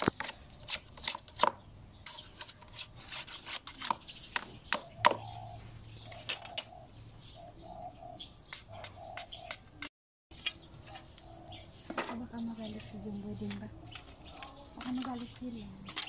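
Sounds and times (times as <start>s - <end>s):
dove cooing: 4.8s - 9.5s.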